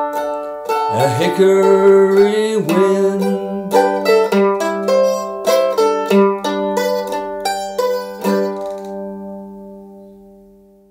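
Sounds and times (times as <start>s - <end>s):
mandolin picking: 0.0s - 10.8s.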